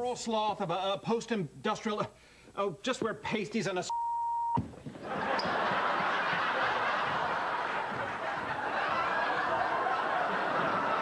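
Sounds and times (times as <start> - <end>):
censor bleep: 3.9 - 4.7
studio audience laughing: 5.0 - 11.0.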